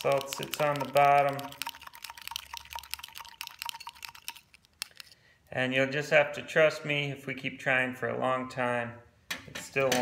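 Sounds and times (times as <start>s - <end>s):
faint liquid slosh: 0.0s - 5.2s
salt clicking in test tube: 0.0s - 5.2s.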